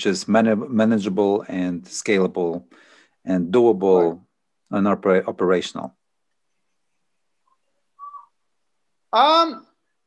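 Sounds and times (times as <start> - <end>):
faint whistle-like tone: 7.6 - 8.4.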